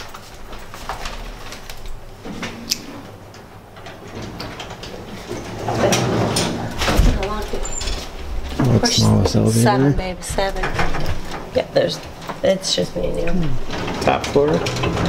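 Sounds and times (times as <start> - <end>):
indistinct talking: 5.7 - 13.7.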